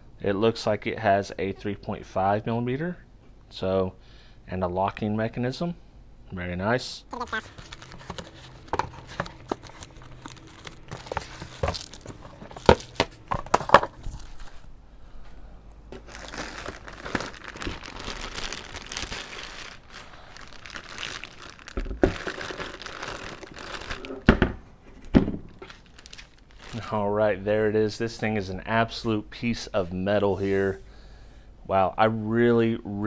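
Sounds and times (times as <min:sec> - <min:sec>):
plastic bag crinkling: 0:07.2 - 0:14.7, 0:15.9 - 0:24.3, 0:25.5 - 0:27.0
foam and cardboard packing knocks: 0:07.7 - 0:14.0.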